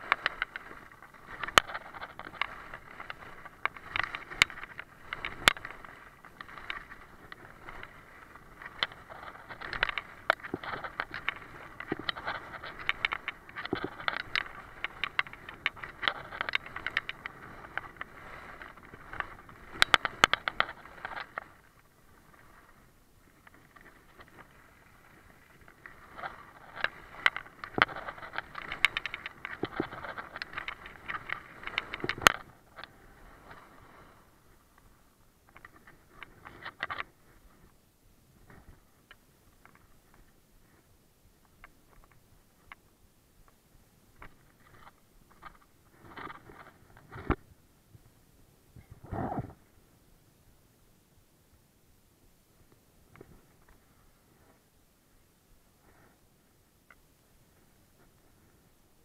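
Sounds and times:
skis scraping on ice: 0.0s - 34.4s.

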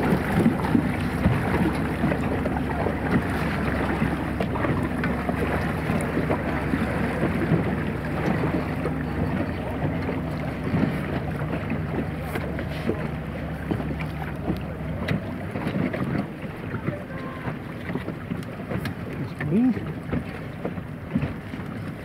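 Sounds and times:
motorboat engine running: 0.0s - 22.0s
water splashing against hull: 0.0s - 22.0s.

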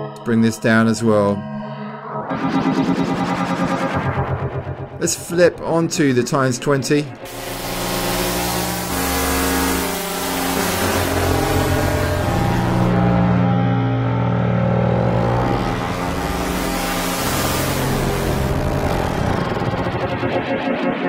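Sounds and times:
warbling synth pad chords: 1.4s - 21.0s.

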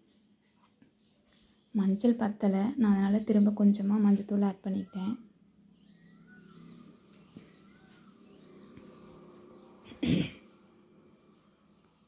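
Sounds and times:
person clearing throat: 9.9s - 10.5s.

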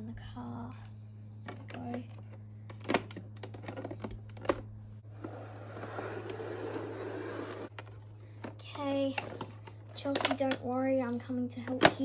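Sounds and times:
toy car wheels rolling on carpet: 5.1s - 7.8s.

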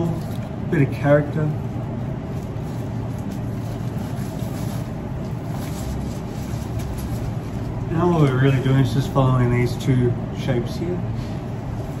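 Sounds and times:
low background rumble: 0.0s - 12.0s
rustling of foliage and flower stems: 2.2s - 8.5s.

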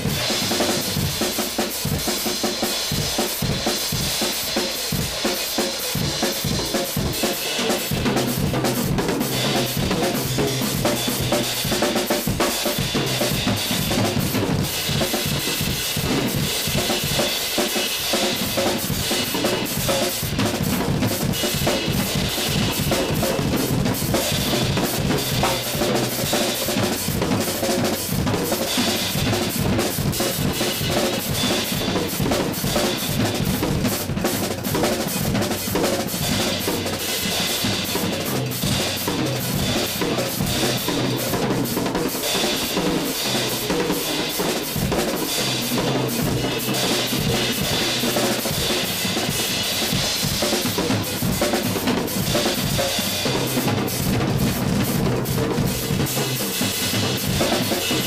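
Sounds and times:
acoustic drum kit solo: 0.0s - 58.0s.

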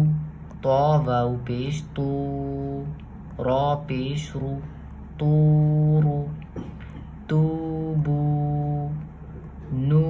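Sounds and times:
man chanting syllables: 0.0s - 10.0s.

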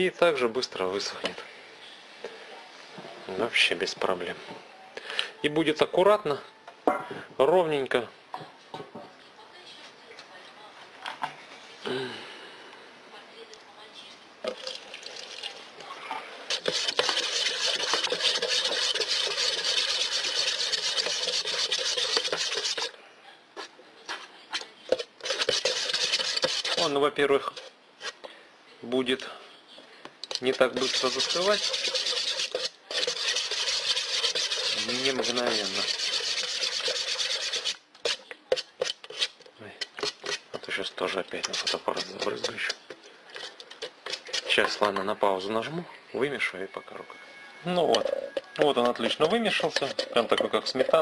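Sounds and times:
stick scraping metal can: 16.5s - 22.9s, 24.9s - 28.2s, 30.3s - 45.0s, 47.9s - 51.0s.

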